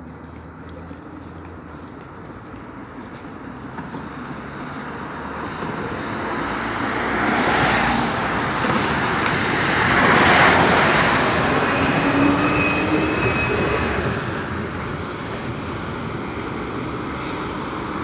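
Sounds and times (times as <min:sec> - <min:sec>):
tram electric whine: 0:02.5 - 0:18.0.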